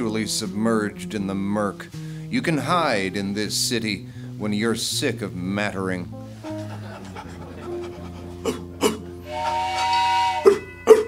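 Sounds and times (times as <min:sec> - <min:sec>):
dog panting: 0:07.2 - 0:08.4
dog whining: 0:08.4 - 0:11.0.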